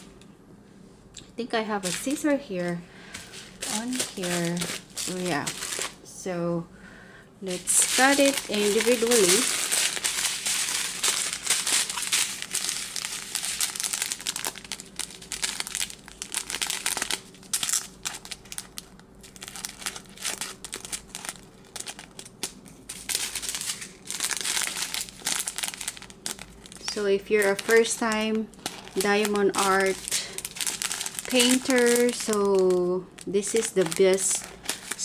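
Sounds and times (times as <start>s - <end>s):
plastic bags crinkling: 1.8s - 6.0s, 7.5s - 35.0s.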